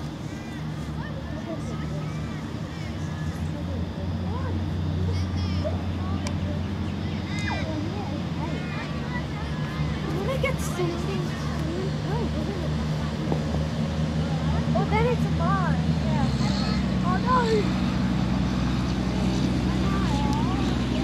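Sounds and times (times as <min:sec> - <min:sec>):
distant voices calling out: 0:00.0 - 0:21.0
low engine hum: 0:00.0 - 0:21.0.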